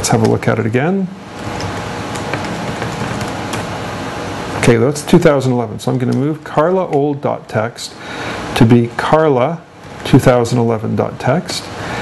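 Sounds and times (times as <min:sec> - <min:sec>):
laptop keyboard typing clicks: 0:01.6 - 0:03.7.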